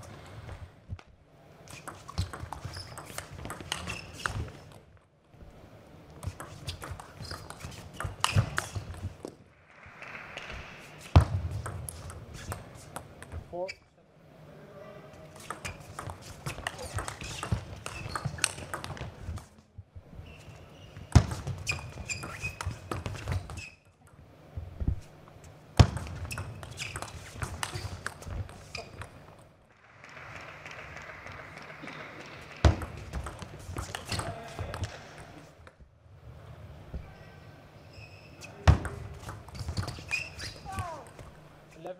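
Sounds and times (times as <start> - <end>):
people clapping: 29.7 - 33.4.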